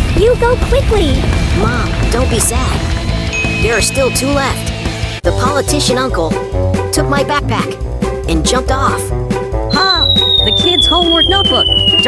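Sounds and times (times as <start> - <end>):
lively background music: 0.0 - 12.0
cartoon falling whistle: 9.7 - 12.0.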